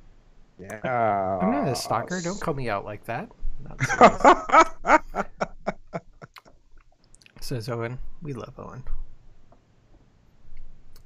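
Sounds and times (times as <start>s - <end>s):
man chuckling: 3.8s - 6.4s.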